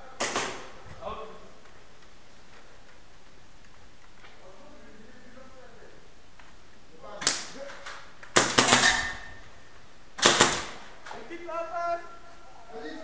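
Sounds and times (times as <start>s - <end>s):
airsoft guns firing: 0.1s - 0.8s, 7.2s - 9.4s, 10.2s - 11.1s
person calling out: 11.2s - 13.0s.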